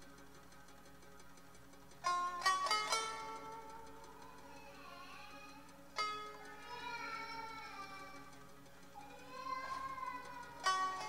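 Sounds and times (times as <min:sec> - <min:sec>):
folk instrument ensemble: 0:02.0 - 0:08.4, 0:09.0 - 0:11.0.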